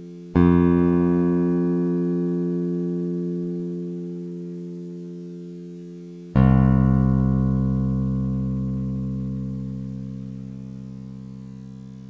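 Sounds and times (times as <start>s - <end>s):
long bass guitar note: 6.4s - 12.0s.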